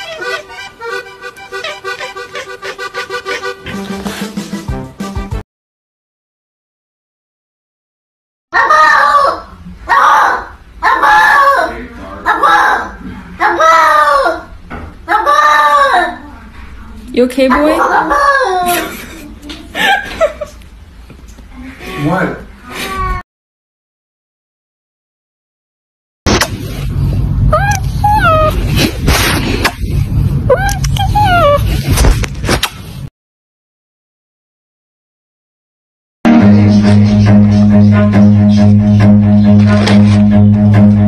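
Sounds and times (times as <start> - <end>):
cat yowling: 17.6 - 18.8, 27.5 - 28.6
low rumble: 26.3 - 32.2.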